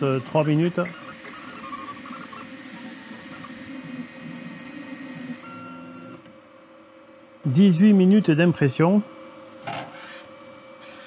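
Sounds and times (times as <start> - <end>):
stepper motors whining: 0.0 - 6.4, 9.6 - 11.0
fan hum: 0.0 - 11.0.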